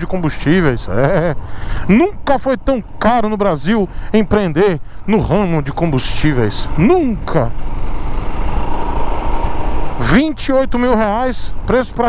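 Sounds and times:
wind and road noise: 0:00.0 - 0:12.0
motorcycle engine running: 0:06.6 - 0:10.2.

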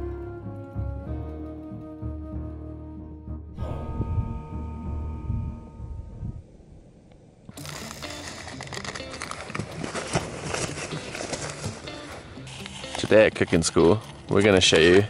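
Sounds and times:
background music: 0:00.0 - 0:06.5, 0:07.5 - 0:15.0
paper packet crinkling and tearing: 0:07.5 - 0:14.3
oats pouring into a pot: 0:07.6 - 0:09.5.

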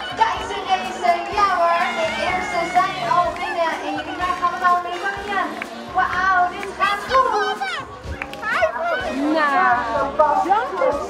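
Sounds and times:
young children calling and chattering: 0:00.0 - 0:11.0.

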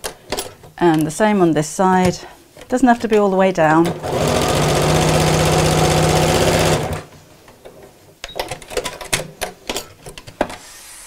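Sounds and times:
sewing machine stitching: 0:03.8 - 0:07.1.

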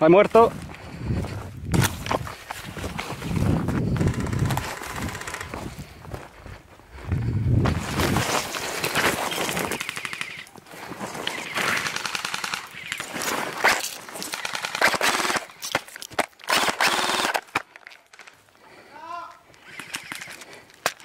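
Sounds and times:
airsoft rifle firing bursts: 0:04.0 - 0:05.6, 0:09.6 - 0:10.5, 0:11.4 - 0:13.2, 0:14.2 - 0:15.5, 0:16.5 - 0:17.6.

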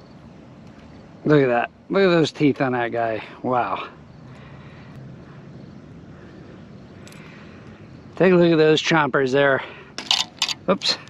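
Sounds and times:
faint low engine drone: 0:00.0 - 0:11.0.

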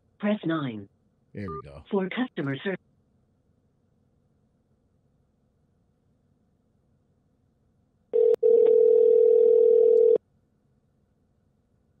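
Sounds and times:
phone line click: 0:08.2 - 0:10.2
telephone ringback tone: 0:08.2 - 0:10.2.

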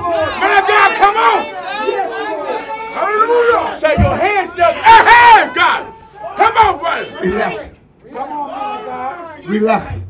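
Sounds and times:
congregation shouting and exclaiming: 0:00.0 - 0:09.9.

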